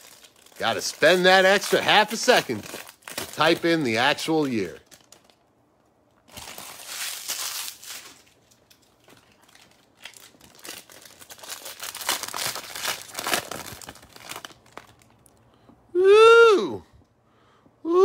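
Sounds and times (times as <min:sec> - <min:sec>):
foil wrapper crinkling and tearing: 0:00.0 - 0:05.5, 0:06.2 - 0:15.4.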